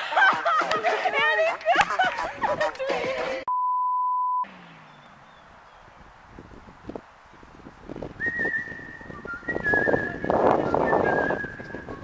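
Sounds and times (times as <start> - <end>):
censor bleep tone: 3.5 - 4.5.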